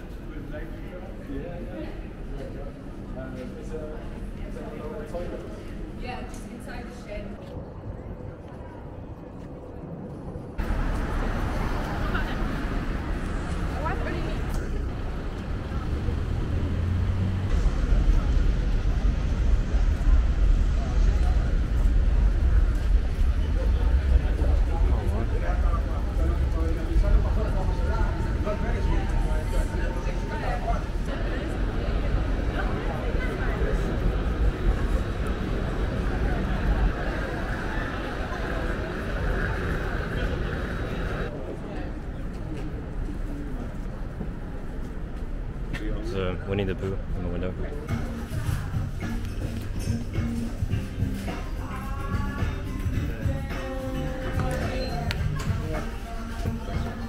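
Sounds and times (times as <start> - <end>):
street noise rumble: 0.0 - 57.0
cars passing: 10.6 - 41.4.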